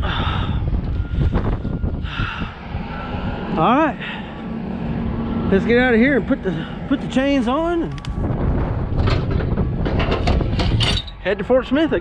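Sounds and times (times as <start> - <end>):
low steady rumbling: 0.0 - 12.0.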